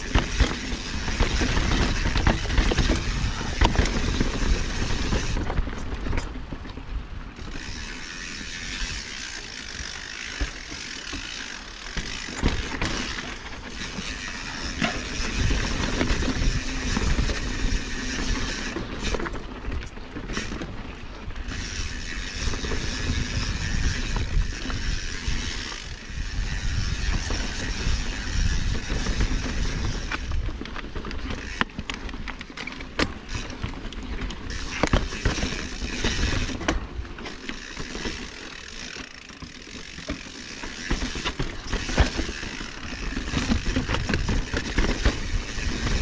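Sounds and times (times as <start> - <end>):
bike freewheel hub clicking: 0.0 - 46.0
tyres rumbling on rocky trail: 0.0 - 46.0.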